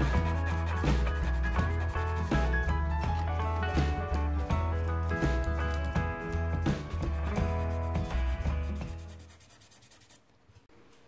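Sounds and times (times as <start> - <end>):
fingertips rubbing pastel on paper: 0.0 - 3.4, 7.1 - 10.3.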